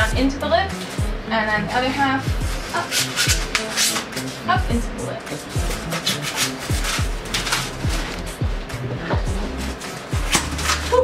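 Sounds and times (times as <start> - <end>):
background music with steady beat: 0.0 - 11.0
foam board squeaking and rubbing: 2.4 - 4.6, 5.3 - 11.0.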